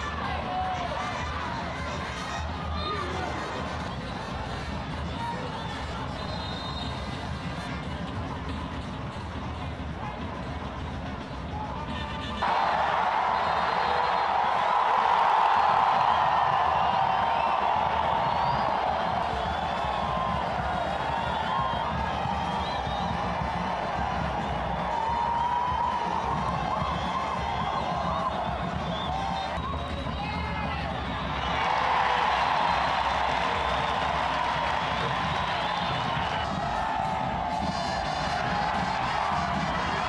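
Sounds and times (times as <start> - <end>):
crowd roaring: 12.4 - 29.7, 30.3 - 40.0
high whistles: 15.6 - 23.5, 26.7 - 36.6.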